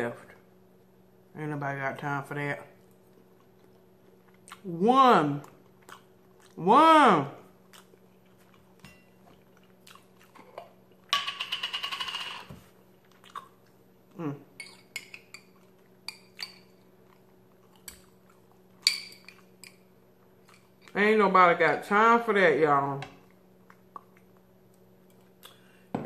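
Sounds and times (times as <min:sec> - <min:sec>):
eating sounds: 0:02.8 - 0:06.7, 0:07.4 - 0:11.1, 0:12.9 - 0:16.1, 0:23.2 - 0:25.8.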